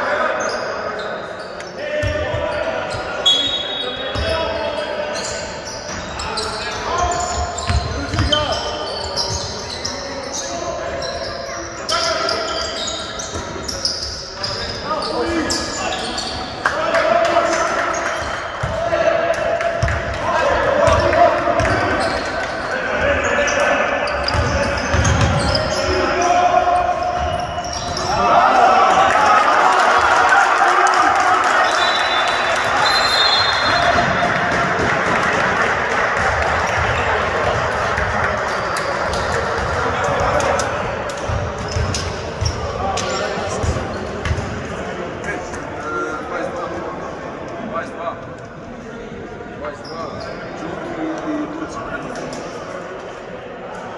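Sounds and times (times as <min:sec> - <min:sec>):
basketball bouncing in a hall: 0:01.9 - 0:16.5, 0:17.5 - 0:28.3, 0:33.0 - 0:44.9
basketball bouncing on court: 0:07.0 - 0:08.6, 0:19.8 - 0:20.1, 0:24.2 - 0:25.8, 0:41.2 - 0:44.6.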